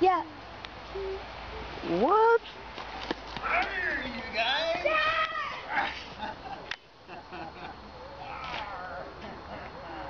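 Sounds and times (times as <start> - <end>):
children squealing excitedly: 3.5 - 6.0.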